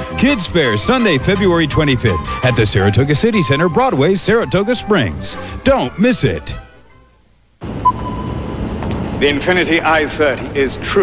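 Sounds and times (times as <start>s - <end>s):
short high tone: 7.8s - 8.5s.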